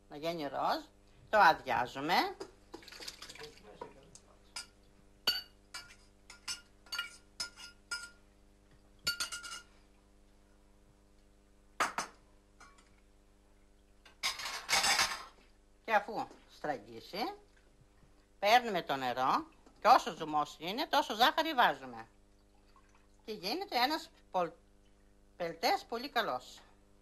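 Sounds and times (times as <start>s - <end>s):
metal spoon clinking on saucepan: 9.0s - 9.7s.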